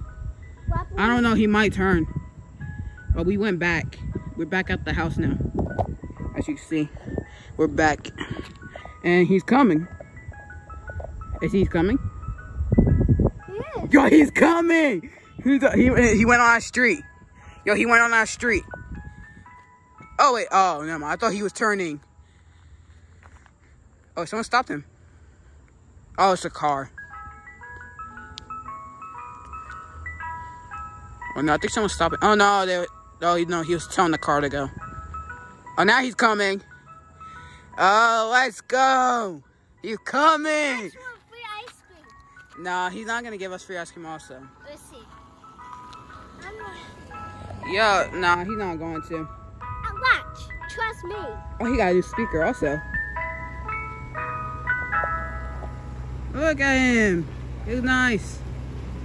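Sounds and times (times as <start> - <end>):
ice cream truck chime jingle: 0.0 - 59.0
truck engine hum: 40.8 - 59.0.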